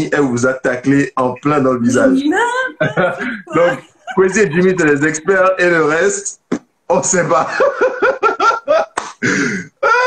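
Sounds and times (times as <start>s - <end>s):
people laughing: 2.4s - 6.2s, 7.2s - 9.2s.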